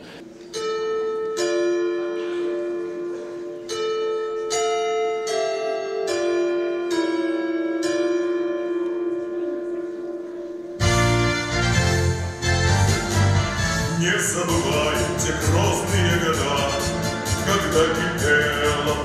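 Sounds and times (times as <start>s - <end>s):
full band playing: 10.7s - 19.0s.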